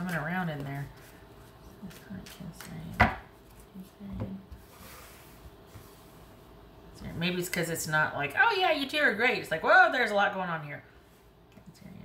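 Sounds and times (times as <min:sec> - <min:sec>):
cards being shuffled: 0:00.0 - 0:03.9.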